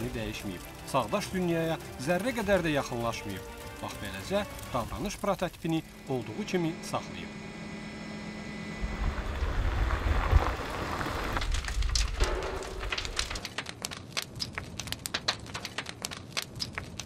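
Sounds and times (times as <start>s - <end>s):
fire crackling and popping: 0.0s - 6.2s, 8.8s - 17.0s.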